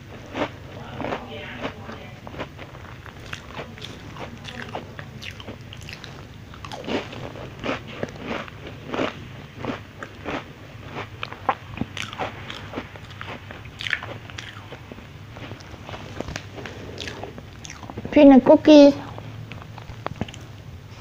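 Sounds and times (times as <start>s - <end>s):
crunching and chewing cookie: 0.0s - 18.1s, 19.0s - 21.0s.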